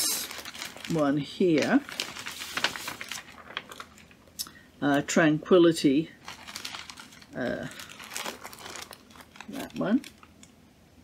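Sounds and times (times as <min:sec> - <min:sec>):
wrapping crinkling and rustling: 0:00.0 - 0:05.1, 0:06.0 - 0:10.6.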